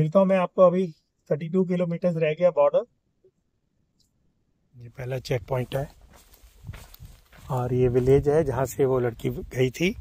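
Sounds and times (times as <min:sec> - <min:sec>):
man speaking: 0:00.0 - 0:02.9, 0:04.7 - 0:06.0, 0:07.4 - 0:10.0
outdoor background noise: 0:00.0 - 0:10.0.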